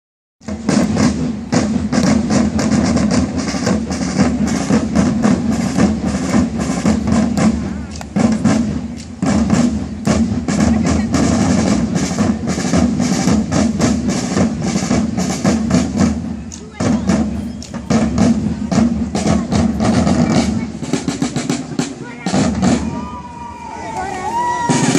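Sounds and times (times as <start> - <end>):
parade drums marching rhythm: 0.4 - 24.9.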